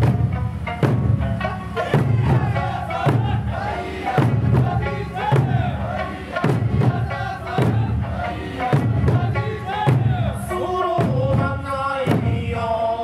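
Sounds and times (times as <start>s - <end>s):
plucked lute accompaniment: 0.0s - 12.4s
strong drum beat: 0.0s - 12.8s
group of voices chanting: 1.8s - 10.7s.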